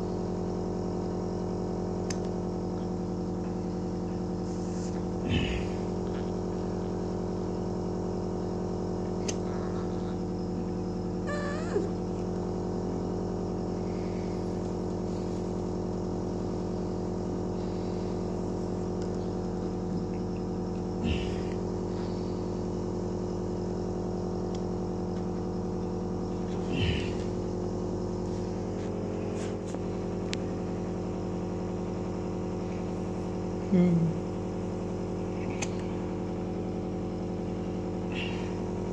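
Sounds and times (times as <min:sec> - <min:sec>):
steady electrical hum: 0:00.0 - 0:38.9.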